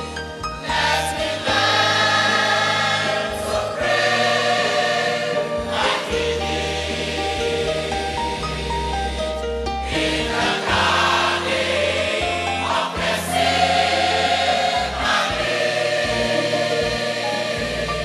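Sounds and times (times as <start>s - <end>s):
choir singing gospel: 0.0s - 18.0s
instrumental accompaniment: 0.0s - 18.0s.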